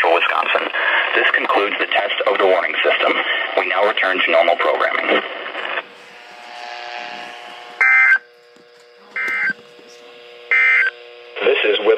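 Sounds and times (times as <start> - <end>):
buzzy digital tone bursts: 1.2 - 8.3, 9.0 - 11.9.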